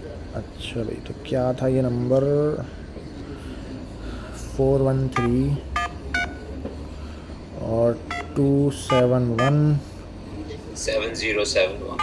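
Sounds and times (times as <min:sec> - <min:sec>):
touch-tone beeps: 0:05.2 - 0:06.5, 0:08.1 - 0:09.6.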